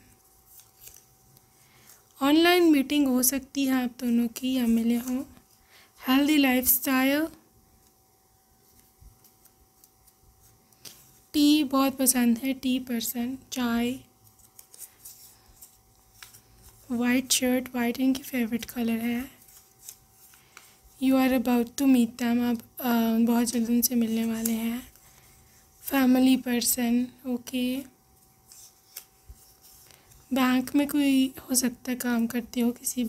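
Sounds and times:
paper crinkling: 0.0 - 2.2, 8.6 - 11.1, 14.2 - 21.4, 23.4 - 26.4, 28.1 - 30.8
paper rustling and clicks: 0.4 - 2.0, 28.5 - 30.2.

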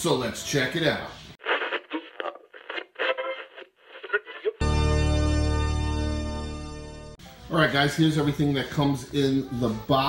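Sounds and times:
guitar music: 4.6 - 7.5.

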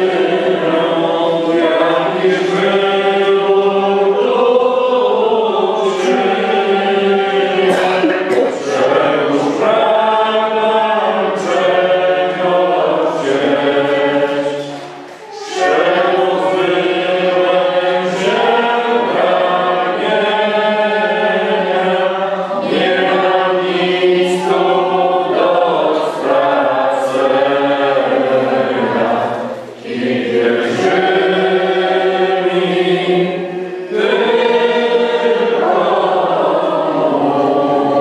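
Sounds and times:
choir singing a hymn: 0.0 - 38.0.

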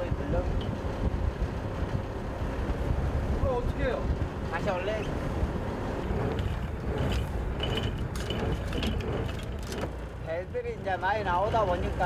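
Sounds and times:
boat engine rumble: 0.0 - 12.0
line reel winding: 6.3 - 9.9.

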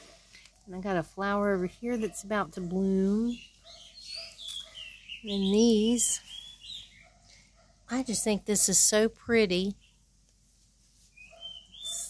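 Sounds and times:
bird chirping faintly: 1.9 - 7.9, 11.1 - 12.0.

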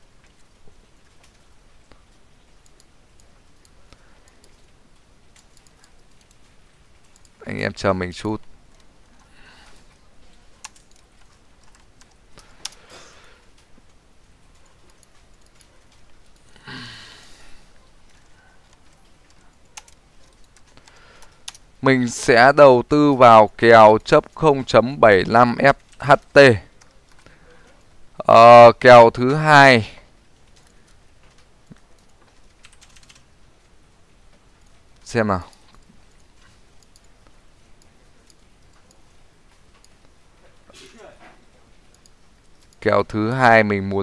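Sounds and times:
computer keyboard typing: 2.5 - 7.4, 10.3 - 12.9, 13.5 - 16.5, 17.8 - 21.7, 25.2 - 27.8, 30.4 - 33.3, 41.8 - 42.9.

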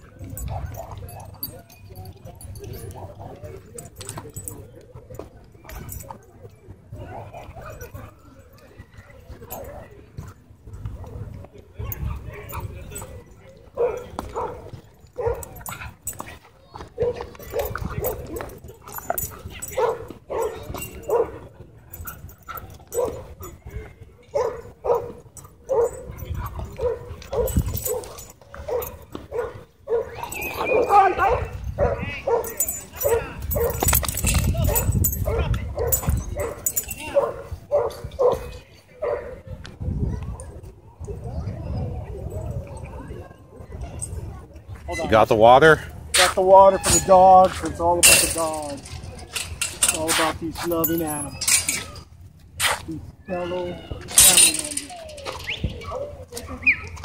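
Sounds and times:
dog barking: 13.8 - 15.8, 17.0 - 18.2, 19.7 - 21.4, 22.9 - 23.3, 24.3 - 26.1, 26.8 - 33.9, 34.6 - 39.4.

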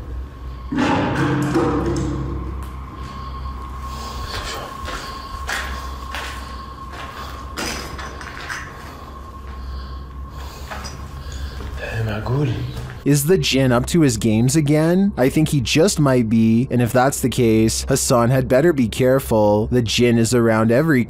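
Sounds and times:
thin high hum: 0.0 - 18.8.

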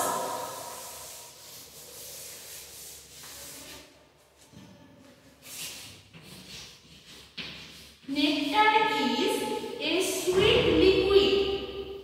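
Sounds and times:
eraser rubbing on chalkboard: 0.0 - 3.9.

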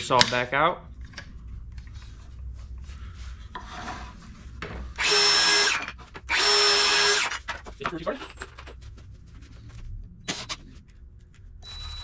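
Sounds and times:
circular saw cutting wood: 5.0 - 7.4.

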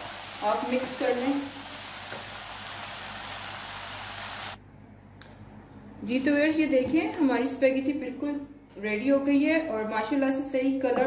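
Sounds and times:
food sizzling in a hot pan: 0.0 - 4.6.

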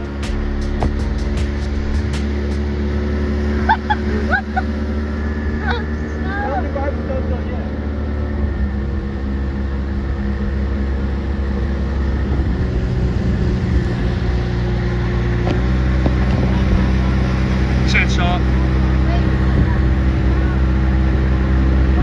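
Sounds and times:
motorboat engine running: 0.0 - 22.0.

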